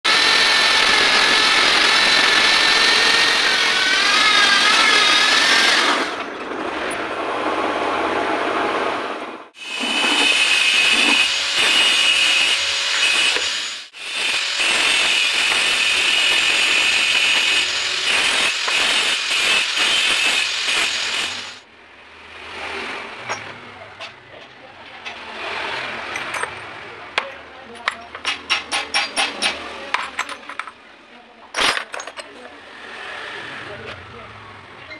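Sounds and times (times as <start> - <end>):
grinder grinding steel: 0.1 - 7.1, 9.6 - 21.7.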